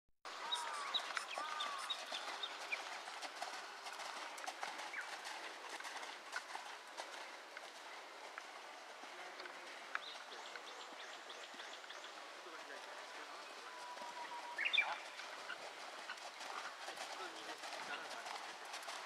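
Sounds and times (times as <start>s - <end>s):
birds chirping: 0.3s - 6.1s, 9.0s - 18.3s
horse hoofbeats on sand: 0.6s - 19.0s.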